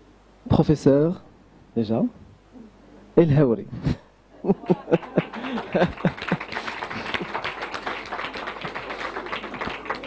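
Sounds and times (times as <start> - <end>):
audience applauding: 4.7 - 10.0.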